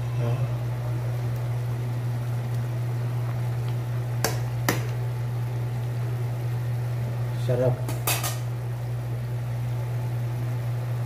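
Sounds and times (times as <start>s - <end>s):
soup bubbling in a pot: 0.0s - 11.0s
steady low hum: 0.0s - 11.0s.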